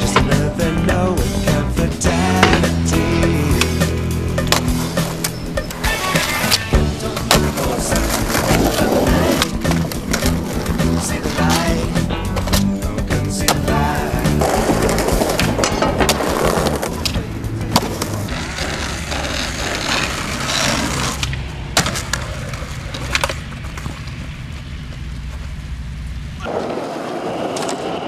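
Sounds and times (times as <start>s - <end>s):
background music with bass line: 0.0s - 22.8s
skateboard wheels rolling on concrete: 0.0s - 28.0s
skateboard clacking on ground: 13.4s - 24.3s.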